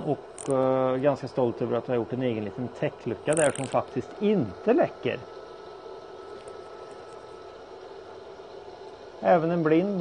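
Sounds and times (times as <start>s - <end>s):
burner low hum: 0.0s - 10.0s.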